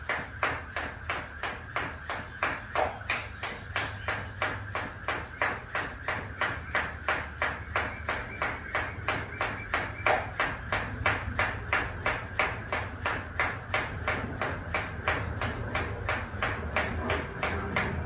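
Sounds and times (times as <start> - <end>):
jump rope slapping the mat: 0.0 - 18.0.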